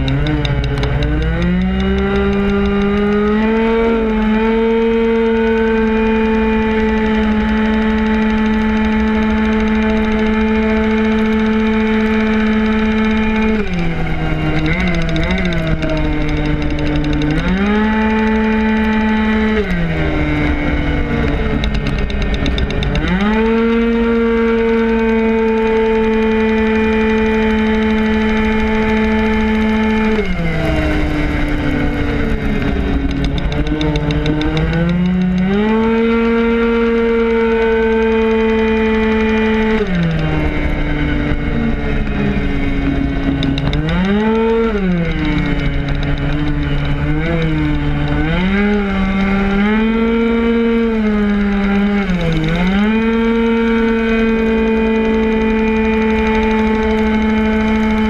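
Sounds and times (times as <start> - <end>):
two-stroke scooter engine revving: 0.0 - 58.0
wind rumble on microphone: 0.0 - 58.0.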